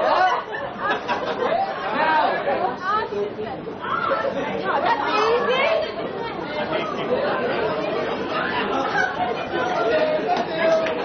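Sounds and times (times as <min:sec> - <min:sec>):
indistinct audience chatter: 0:00.0 - 0:11.0.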